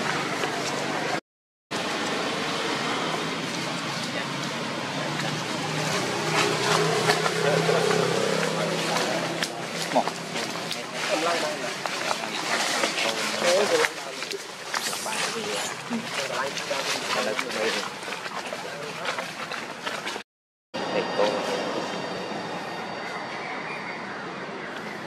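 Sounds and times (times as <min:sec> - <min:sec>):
outdoor background noise: 0:00.0 - 0:20.2, 0:20.8 - 0:25.0
indistinct voices: 0:02.5 - 0:19.3, 0:20.8 - 0:23.3.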